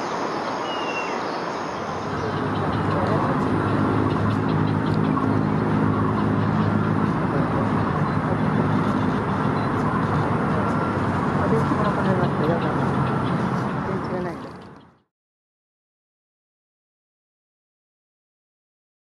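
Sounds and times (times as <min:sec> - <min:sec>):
road traffic: 0:00.0 - 0:15.1
vehicle engine humming: 0:00.0 - 0:15.1
people's voices: 0:01.9 - 0:05.5, 0:06.2 - 0:14.6.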